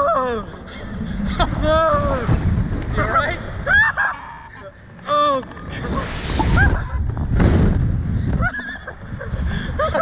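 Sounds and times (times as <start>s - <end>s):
wind rush on microphone: 0.9s - 3.8s, 5.6s - 10.0s.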